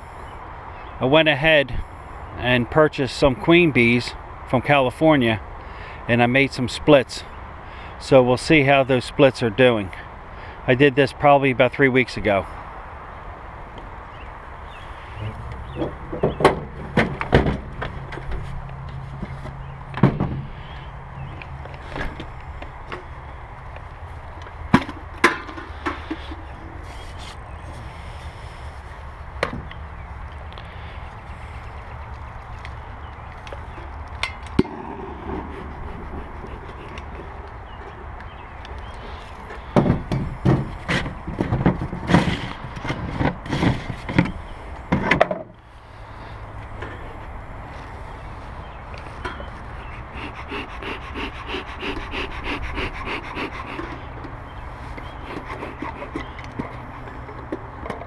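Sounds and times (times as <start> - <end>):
steady low rumble: 34.5 - 38.1.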